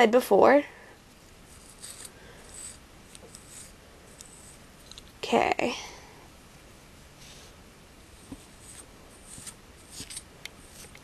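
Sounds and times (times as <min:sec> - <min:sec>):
hair pick rustling through hair: 0:01.1 - 0:05.4, 0:07.2 - 0:11.0.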